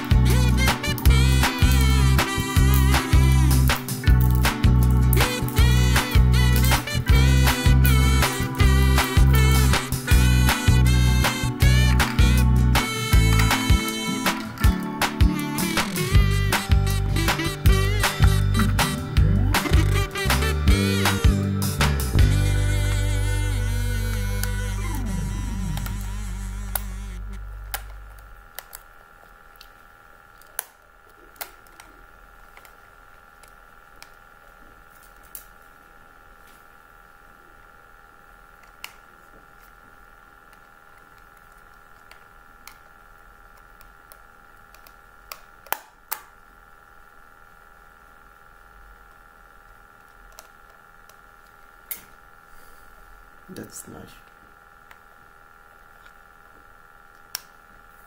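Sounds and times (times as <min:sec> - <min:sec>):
music: 0:00.0 - 0:27.6
faint steady hum: 0:00.0 - 0:58.0.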